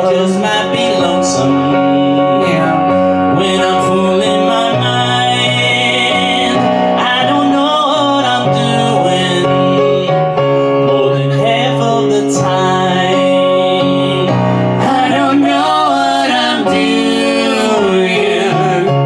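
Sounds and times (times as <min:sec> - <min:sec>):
piano accompaniment: 0:00.0 - 0:19.0
woman singing: 0:11.0 - 0:19.0.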